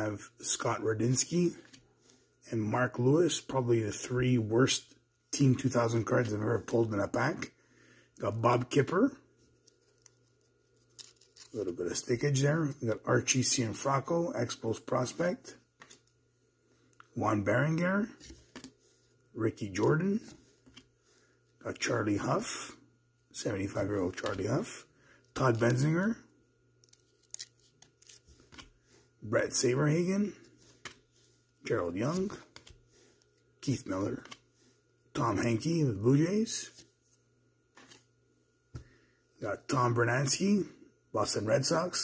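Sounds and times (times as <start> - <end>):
steady hum: 0.0 - 42.0
trading cards flipping: 15.8 - 16.2, 18.0 - 18.8, 26.8 - 28.8, 37.7 - 38.1.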